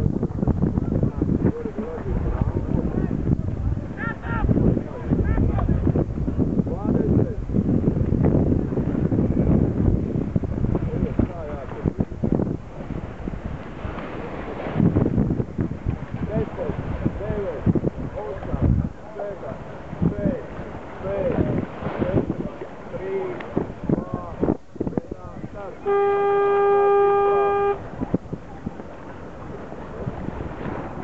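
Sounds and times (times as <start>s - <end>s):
wind buffeting microphone: 0.0s - 31.0s
voices: 0.8s - 6.0s
horn blast: 25.8s - 27.8s.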